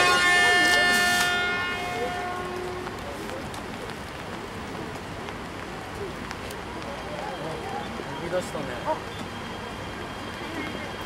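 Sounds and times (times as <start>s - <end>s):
train horn: 0.0s - 3.0s.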